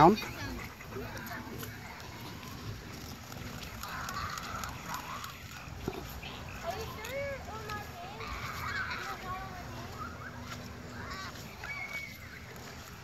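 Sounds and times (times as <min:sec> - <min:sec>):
distant children's voices: 0:00.0 - 0:13.0.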